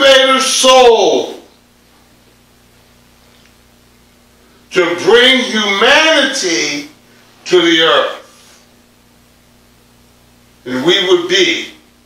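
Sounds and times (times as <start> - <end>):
faint steady hiss: 0.0 - 12.0
low even hum: 0.0 - 12.0.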